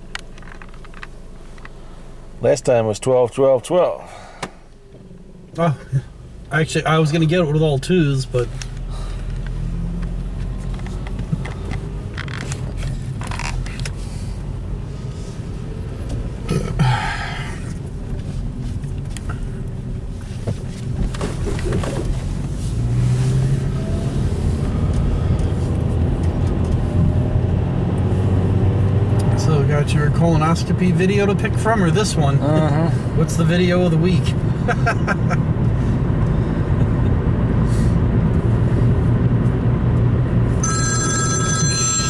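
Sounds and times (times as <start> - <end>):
car engine rumble: 0.0 - 42.0
road noise: 0.0 - 42.0.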